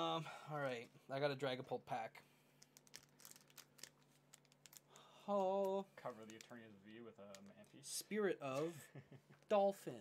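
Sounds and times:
foil pack crinkling: 2.8 - 5.1.

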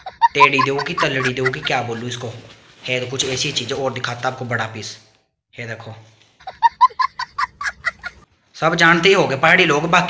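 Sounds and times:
high-pitched clucking calls: 0.0 - 1.7.

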